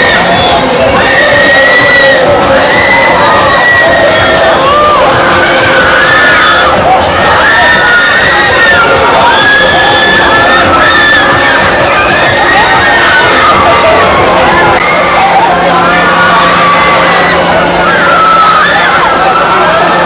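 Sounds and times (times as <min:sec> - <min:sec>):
riders screaming and shouting: 0:00.0 - 0:20.0.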